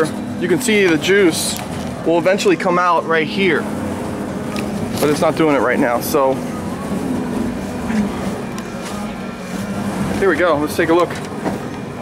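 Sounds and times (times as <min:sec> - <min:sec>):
grape press machinery humming: 0:00.0 - 0:12.0.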